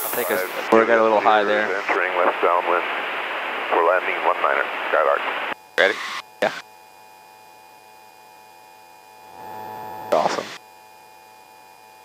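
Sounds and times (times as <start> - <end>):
electrical hum on headset intercom: 0.0 - 8.2, 9.2 - 10.7.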